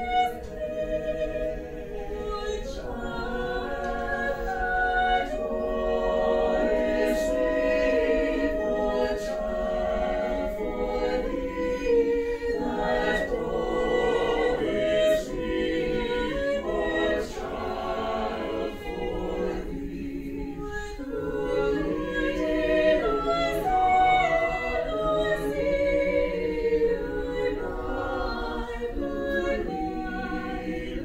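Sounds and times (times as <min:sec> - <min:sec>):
mixed choir singing a cappella: 0:00.0 - 0:31.0.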